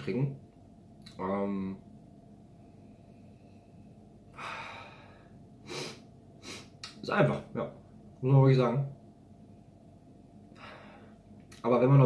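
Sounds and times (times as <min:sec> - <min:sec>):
man breathing out in puffs: 0:04.3 - 0:06.8, 0:10.6 - 0:11.2
mouth click: 0:06.8 - 0:07.0.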